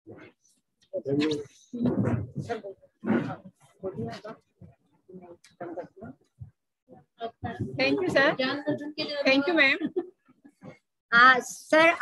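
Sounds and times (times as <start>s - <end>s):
voices over a video call: 0.1s - 12.0s.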